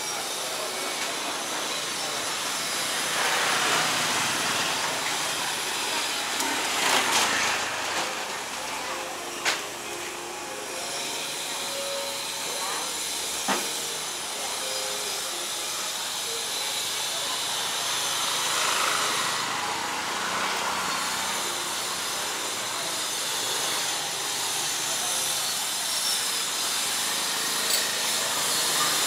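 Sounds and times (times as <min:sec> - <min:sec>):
motor scooter passing: 0:01.5 - 0:08.6, 0:17.6 - 0:24.4.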